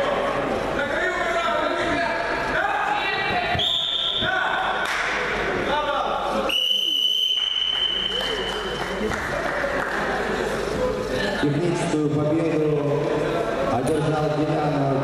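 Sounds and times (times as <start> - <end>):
high whistle-like tones: 3.6 - 4.3, 6.5 - 8.4.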